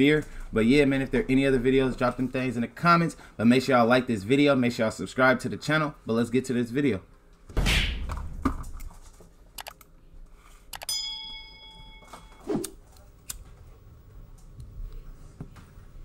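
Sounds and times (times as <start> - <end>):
sharp clicks: 9.6 - 9.9
bright ringing ping: 10.9 - 12.5.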